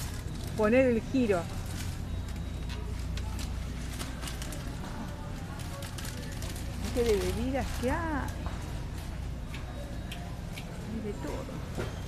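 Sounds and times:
shopping cart rolling and rattling: 0.0s - 9.1s
faint voices: 0.0s - 12.0s.

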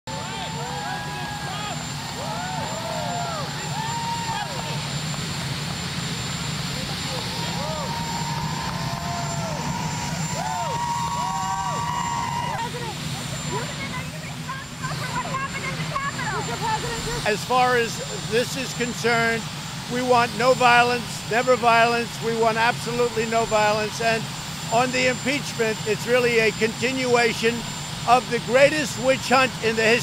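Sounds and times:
helicopter turbine engines: 0.1s - 30.0s.

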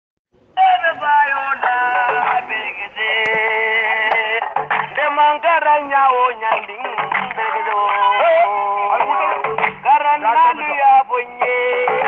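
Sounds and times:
musical accompaniment: 0.6s - 12.0s
person singing: 0.6s - 12.0s.

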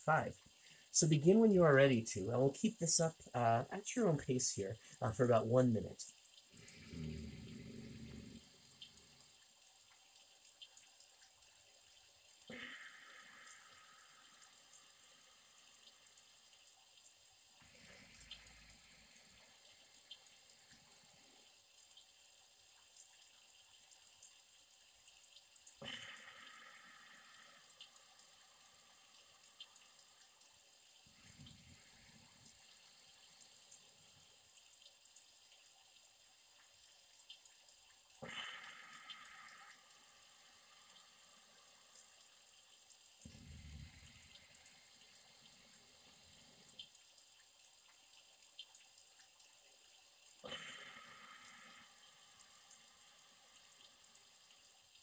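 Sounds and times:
soft slow breaths: 0.0s - 1.4s, 4.6s - 5.1s, 6.2s - 37.2s, 38.1s - 48.5s, 50.3s - 55.0s
faint steady hiss: 0.0s - 55.0s.

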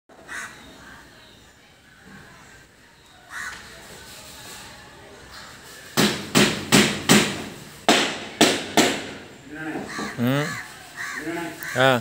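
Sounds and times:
faint outdoor background noise: 0.1s - 12.0s
bird calling: 9.8s - 12.0s.

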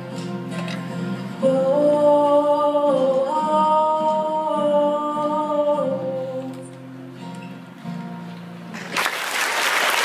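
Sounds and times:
acoustic guitar: 0.0s - 9.5s
person singing long notes: 1.0s - 6.8s.

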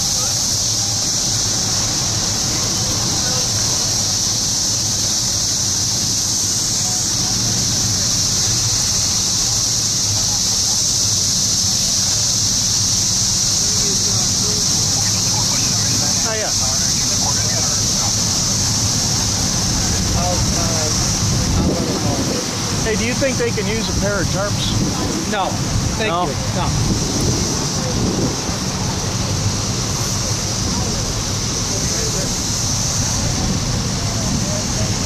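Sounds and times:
diesel engines idling: 0.0s - 35.0s
faint distant voices: 0.0s - 35.0s
high-pitched hiss: 0.0s - 35.0s.

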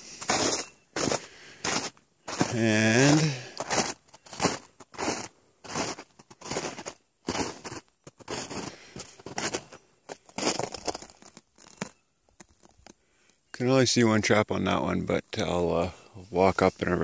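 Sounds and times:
footsteps crunching through snow: 0.0s - 12.9s.

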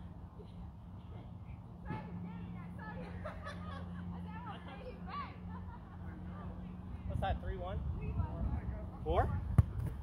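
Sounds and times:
wind rumble on microphone: 7.1s - 10.0s.

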